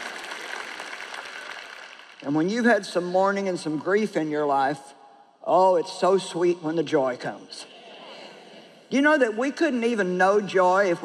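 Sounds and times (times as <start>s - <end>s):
audience applauding: 0.0s - 2.2s.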